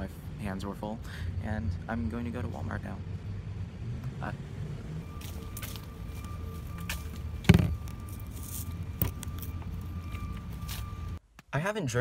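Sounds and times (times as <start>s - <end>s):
loud thump: 7.4s - 7.8s.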